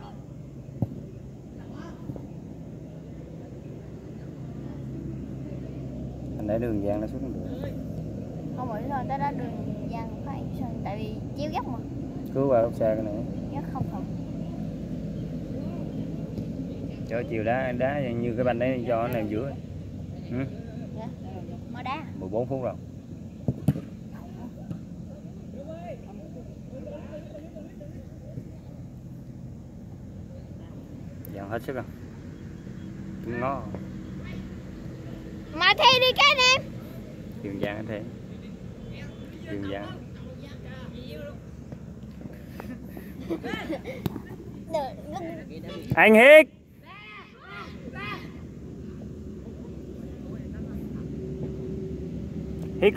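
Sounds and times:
faint distant shouting voices: 0.0s - 41.9s, 42.8s - 52.9s
low steady rumble: 0.0s - 52.9s.

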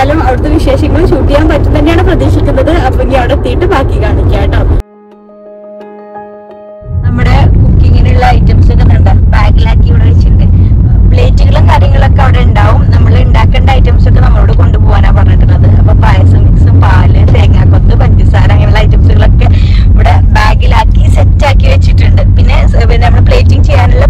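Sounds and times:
car cabin rumble: 7.0s - 24.0s
person talking: 7.1s - 10.5s, 11.1s - 24.0s.

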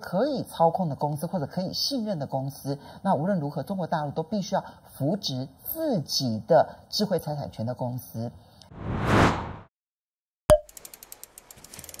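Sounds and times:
mechanical ratchet clicking: 10.6s - 12.0s.

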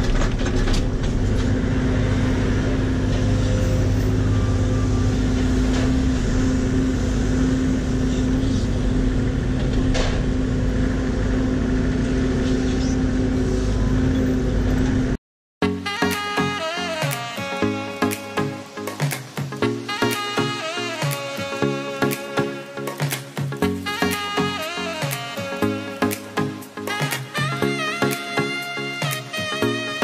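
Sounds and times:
excavator diesel engine running: 0.0s - 15.2s.

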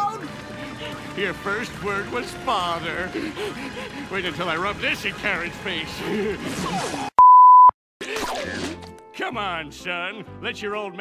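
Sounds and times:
electronic censor beep: 7.2s - 7.8s.

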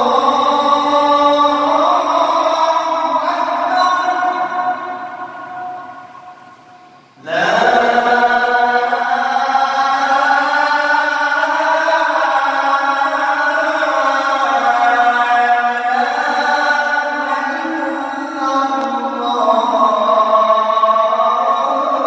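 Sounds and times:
man chanting call to prayer: 0.0s - 22.0s.

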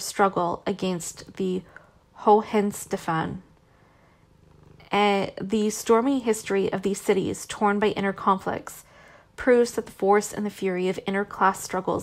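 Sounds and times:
narrator reading: 0.0s - 3.4s, 4.9s - 8.8s, 9.4s - 12.0s.

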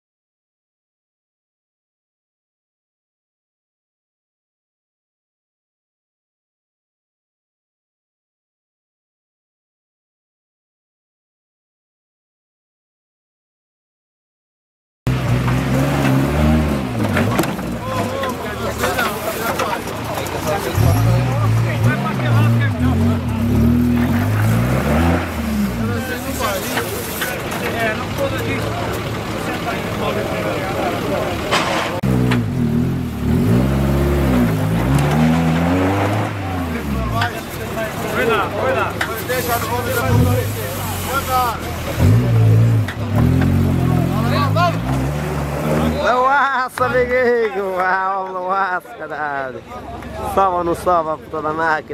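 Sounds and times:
off-road vehicle engine revving: 15.1s - 47.3s.

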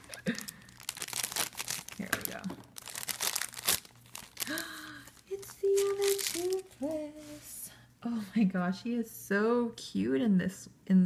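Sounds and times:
foil bag crackling and tearing: 0.0s - 6.9s.

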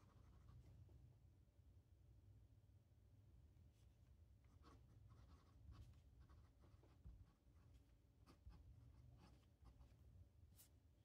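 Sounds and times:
pen nib scratching on paper: 0.0s - 0.8s, 4.5s - 10.0s.

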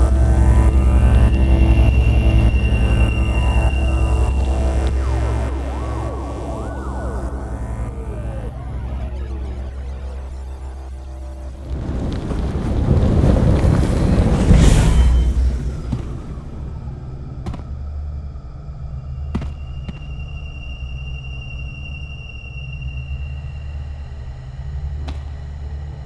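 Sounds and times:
thin high tone: 0.0s - 11.6s, 18.9s - 24.6s
rocket engine rumble: 0.0s - 26.0s.

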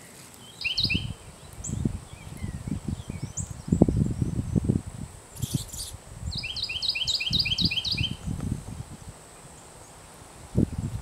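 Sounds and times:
songbird singing: 0.0s - 11.0s.

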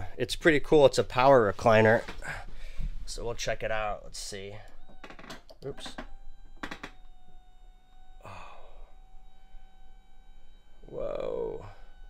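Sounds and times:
electric motor whining: 4.2s - 12.0s.

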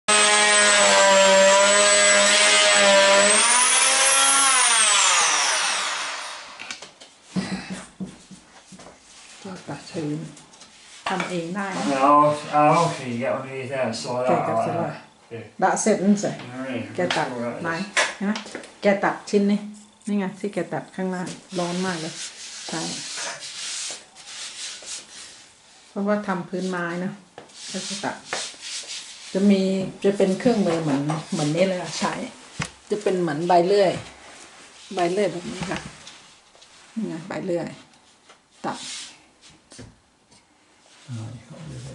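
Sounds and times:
electric saw whining: 0.1s - 6.8s
wood scraping rub: 10.6s - 13.2s, 21.2s - 25.5s.

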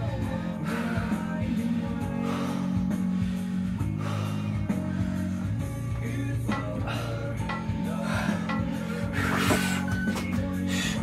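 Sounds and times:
rock song from a radio: 0.0s - 11.0s.

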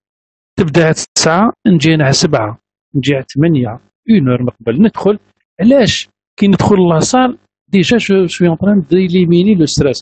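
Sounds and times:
man speaking over video call: 0.6s - 10.0s.

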